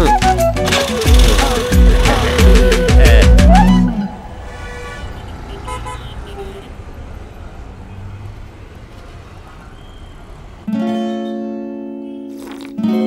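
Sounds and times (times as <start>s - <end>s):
rumble of road traffic: 0.0s - 12.6s
car horns tooting: 0.7s - 6.9s.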